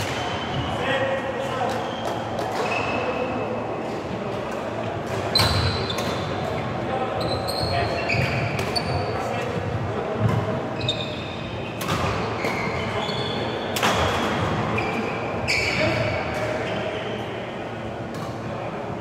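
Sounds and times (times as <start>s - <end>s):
shoes squeaking on sports floor: 0.0s - 3.2s, 5.3s - 6.4s, 7.1s - 9.4s, 10.7s - 17.2s
murmur of voices: 0.0s - 19.0s.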